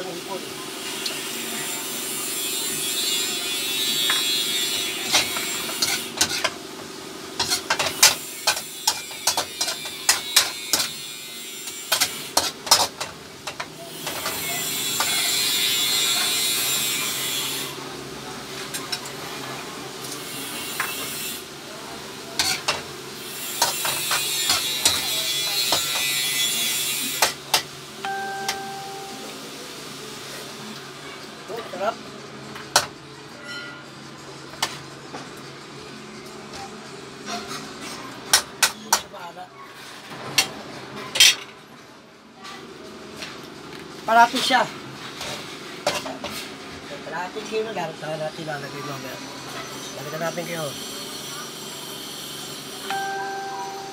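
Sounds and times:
food sizzling in a wok: 0.0s - 31.1s
metal spoon scraping a wok: 2.5s - 6.6s, 7.4s - 17.8s, 22.4s - 27.6s.

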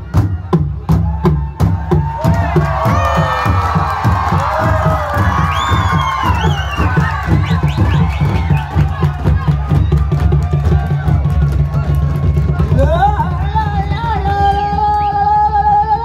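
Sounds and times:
deep barrel drums beaten: 0.0s - 15.4s
crowd cheering and shouting: 0.0s - 16.0s.

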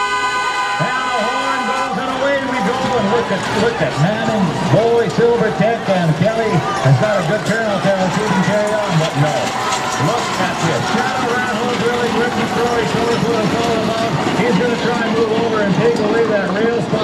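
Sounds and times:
male announcer calling a race: 0.0s - 17.0s
steady background noise: 0.0s - 17.0s.

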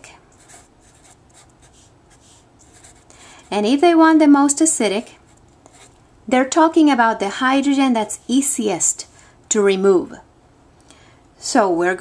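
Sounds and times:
marker scratching on paper: 0.3s - 3.7s, 5.6s - 5.9s.

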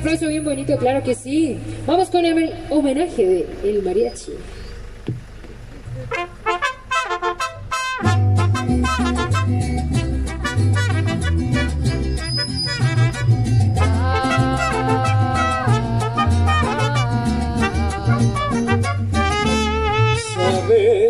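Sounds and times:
mariachi band playing: 6.0s - 21.0s
mariachi trumpets: 6.1s - 21.0s.

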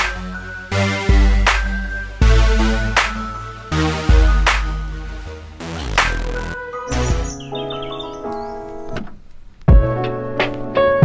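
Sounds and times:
electronic keyboard chords: 0.0s - 9.0s
high chirping notes: 0.2s - 8.7s.

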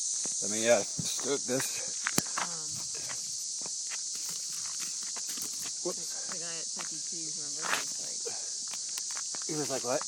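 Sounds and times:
night insects chorus: 0.0s - 10.0s.

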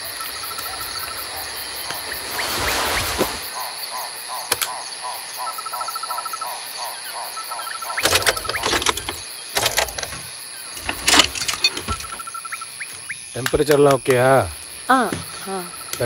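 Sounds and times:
crickets and insects trilling: 0.0s - 16.0s.

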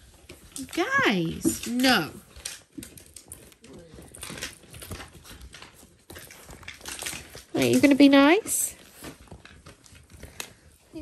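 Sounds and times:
puppies scuffling: 0.0s - 11.0s.

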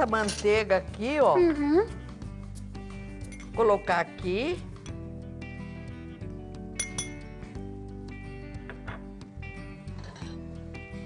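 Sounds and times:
background music: 0.0s - 11.0s
metal spoon clinking: 3.3s - 3.6s, 6.8s - 7.2s, 9.9s - 10.4s.

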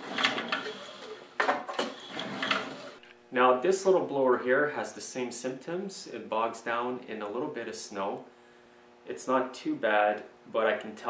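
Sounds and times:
recoil starter rope whirring: 0.0s - 1.2s, 1.9s - 3.0s.

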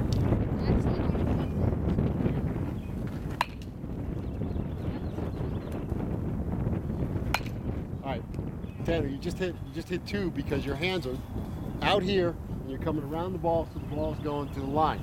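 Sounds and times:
aluminum bat hitting ball: 3.3s - 3.7s, 7.2s - 7.7s.

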